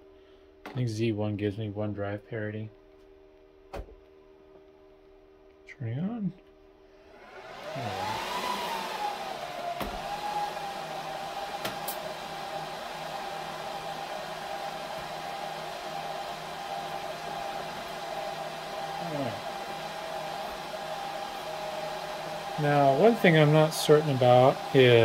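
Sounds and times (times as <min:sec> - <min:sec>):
server cooling fans whine: 0:00.0 - 0:25.0.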